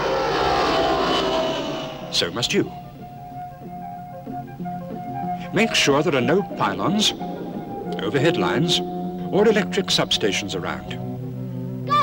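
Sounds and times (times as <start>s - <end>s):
aeroplane flying past: 0.0s - 2.9s.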